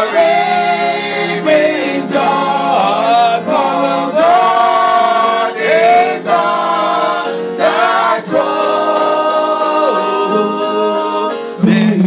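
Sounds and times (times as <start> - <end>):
voices singing gospel: 0.0 - 12.0.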